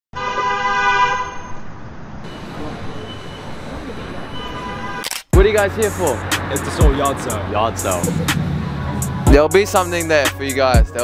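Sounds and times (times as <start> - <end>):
street and traffic noise: 0.1 - 11.0.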